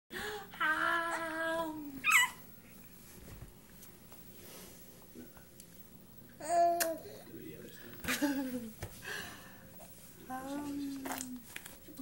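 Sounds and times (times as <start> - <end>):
baby squealing: 2.0 - 2.4.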